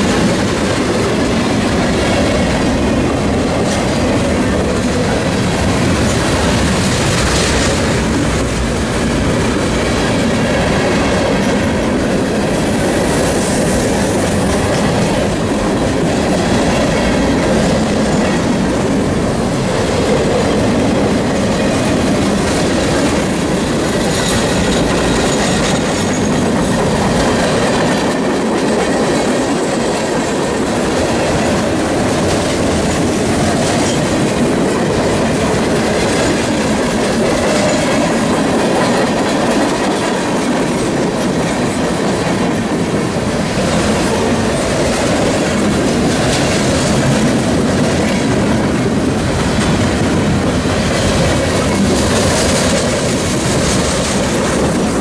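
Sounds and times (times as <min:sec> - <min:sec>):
steel wheels on rails: 0:00.0 - 0:55.0
train clacks: 0:00.0 - 0:55.0.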